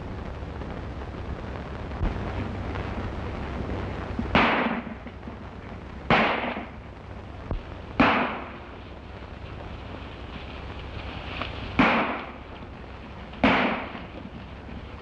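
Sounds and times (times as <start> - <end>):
steady low hum: 0.0 - 15.0
gunshots with echo: 4.3 - 5.0, 13.4 - 14.1.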